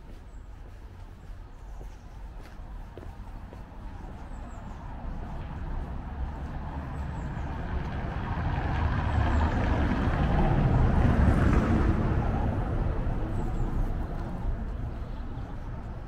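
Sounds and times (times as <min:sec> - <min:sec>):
vehicle passing by: 0:04.4 - 0:16.0.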